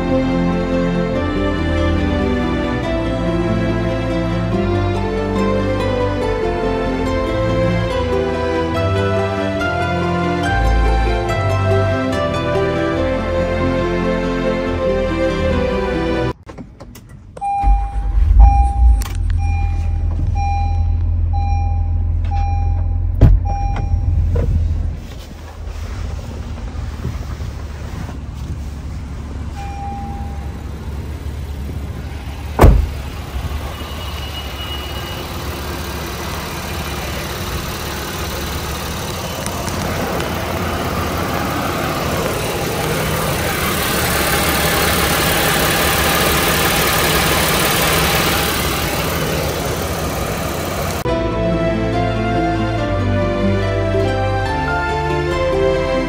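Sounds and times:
car engine idling: 16.7s - 51.2s
loud thump: 17.4s - 20.3s, 23.2s - 24.6s, 32.6s - 33.6s
dashboard warning chime: 17.4s - 24.4s, 29.5s - 30.8s, 33.5s - 35.7s.

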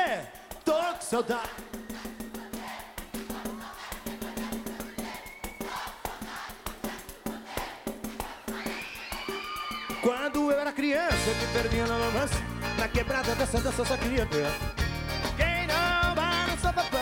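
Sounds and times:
tambourine and percussion beat: 0.0s - 17.0s.

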